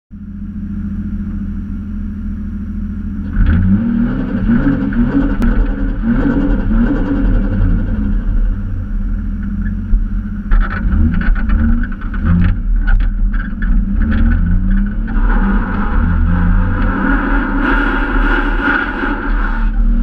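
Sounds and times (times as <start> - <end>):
car engine revving: 0.2 - 20.0.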